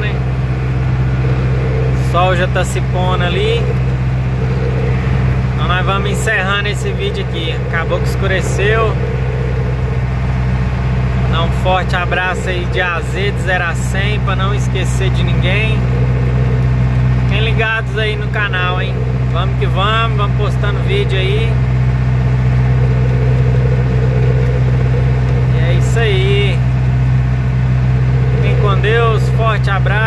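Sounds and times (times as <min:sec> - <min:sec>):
diesel engine drone: 0:00.0 - 0:30.0
road noise: 0:00.0 - 0:30.0.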